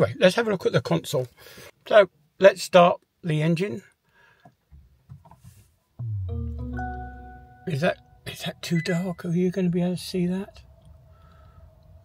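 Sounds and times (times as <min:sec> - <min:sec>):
low bumps: 0:06.0 - 0:08.2.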